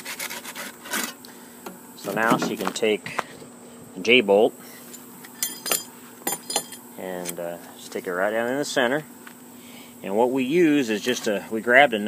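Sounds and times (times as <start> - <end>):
light metallic clinks: 5.4 - 6.8.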